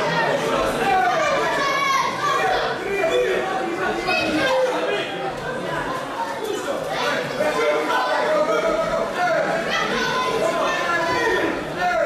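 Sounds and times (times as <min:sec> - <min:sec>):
children's voices: 0:00.0 - 0:12.0
crowd talking and calling out: 0:00.0 - 0:12.0.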